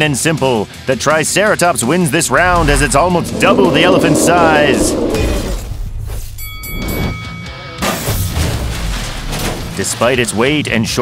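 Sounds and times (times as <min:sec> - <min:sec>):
low rumble and sweep: 0:02.2 - 0:06.4.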